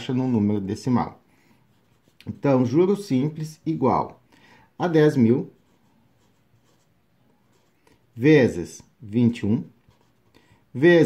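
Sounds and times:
marker scratching on paper: 1.7s - 2.8s, 5.4s - 8.1s, 9.7s - 10.4s.

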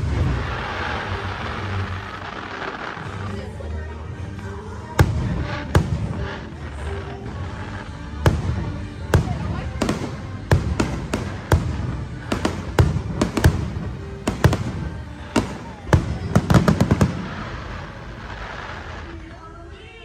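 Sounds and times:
fireworks bursting with sharp bangs: 0.0s - 19.9s
music: 0.0s - 20.0s
voices: 0.0s - 20.0s.

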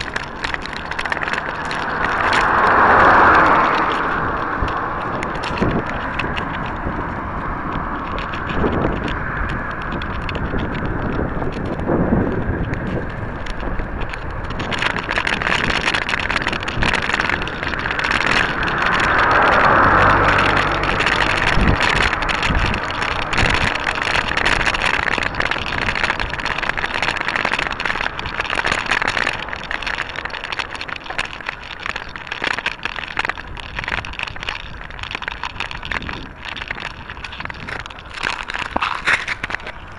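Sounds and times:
knocks and rattles: 0.0s - 39.8s
wind and road noise: 0.0s - 39.9s.

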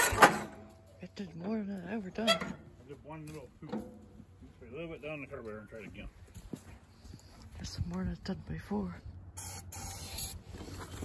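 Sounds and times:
aerosol can spraying: 9.4s - 10.4s.

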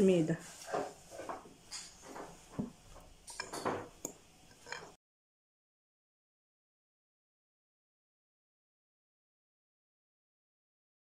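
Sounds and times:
spoon scraping glass bowl: 4.5s - 5.0s.

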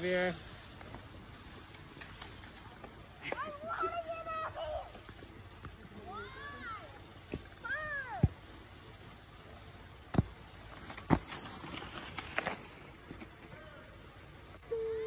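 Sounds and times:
skis hissing across snow: 0.0s - 2.8s, 7.7s - 13.6s.

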